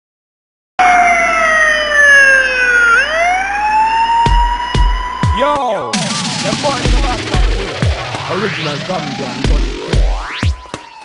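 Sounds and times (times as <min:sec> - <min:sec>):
siren wailing: 0:00.8 - 0:11.0.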